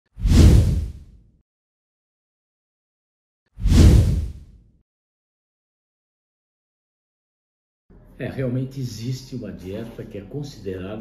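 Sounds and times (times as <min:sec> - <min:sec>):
whoosh sound effect: 0:03.6 - 0:04.4.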